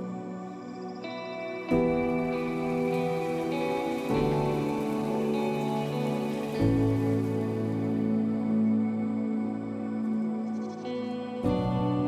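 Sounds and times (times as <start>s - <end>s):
ambient music sustained chords: 0.0s - 12.0s.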